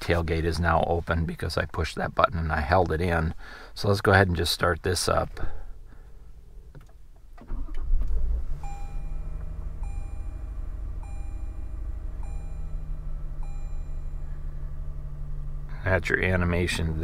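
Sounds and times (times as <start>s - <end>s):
truck engine starting and idling: 7.3s - 17.0s
vehicle warning chime: 8.6s - 15.6s.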